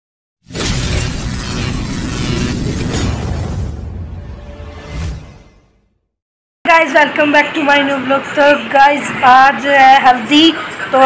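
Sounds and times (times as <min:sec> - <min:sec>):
loud dense noise: 0:06.7 - 0:11.0.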